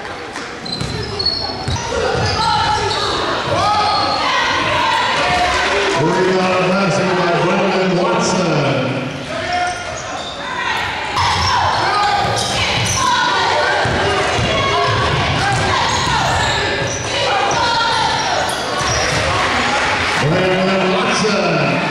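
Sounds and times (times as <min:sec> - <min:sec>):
echoing voices: 0:00.0 - 0:21.9.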